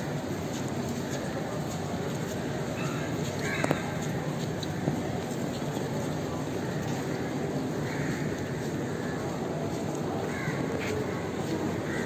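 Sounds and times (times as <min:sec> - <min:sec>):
outdoor background noise: 0:00.0 - 0:12.0.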